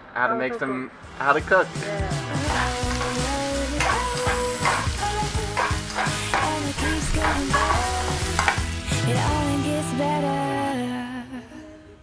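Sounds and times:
background music: 0.0 - 12.0
food sizzling in a frying pan: 2.4 - 9.4
spoon scraping a pan: 2.5 - 8.8.

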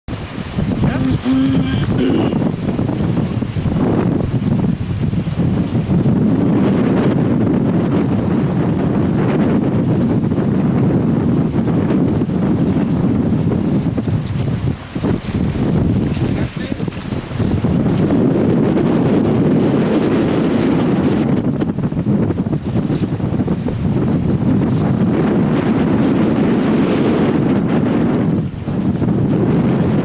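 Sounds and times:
wind buffeting microphone: 0.1 - 30.0.

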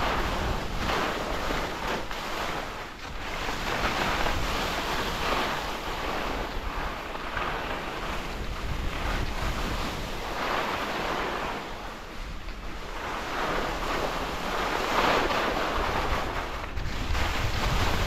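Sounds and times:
skis carving snow: 0.0 - 18.0
wind on microphone: 0.0 - 18.0.

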